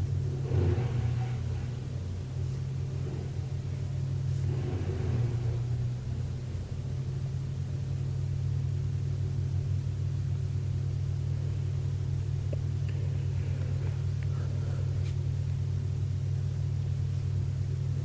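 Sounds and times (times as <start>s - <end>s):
low droning hum: 0.0s - 18.0s.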